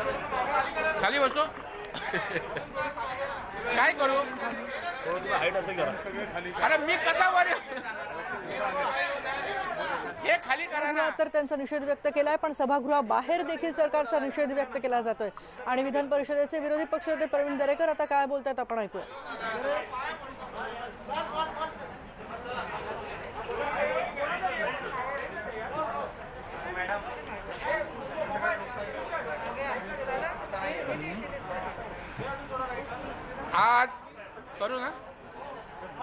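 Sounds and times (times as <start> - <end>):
men chattering: 0.0 - 18.2, 18.9 - 36.0
men talking and shouting: 0.0 - 36.0.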